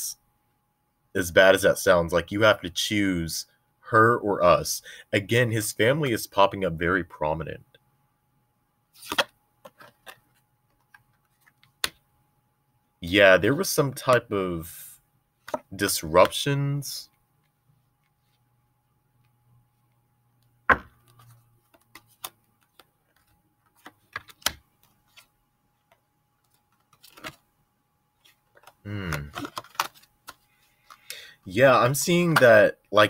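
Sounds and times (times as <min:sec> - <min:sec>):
cards being shuffled: 0:09.0 - 0:12.0, 0:21.0 - 0:25.3, 0:25.9 - 0:27.4, 0:28.2 - 0:31.1.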